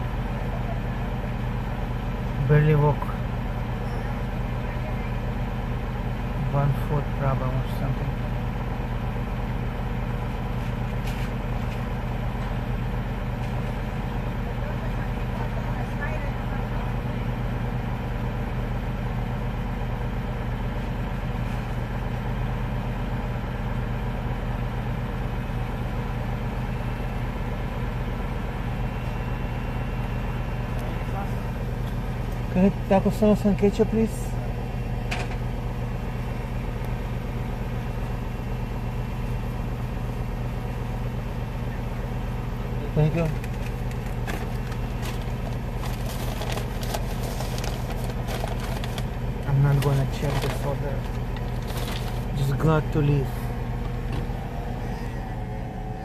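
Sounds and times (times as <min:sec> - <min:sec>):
car engine idling: 0:00.0 - 0:56.0.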